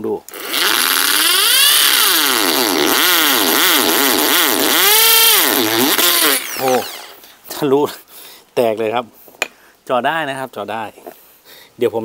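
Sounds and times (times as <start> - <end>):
hammer drill boring into concrete: 0.3 - 7.2.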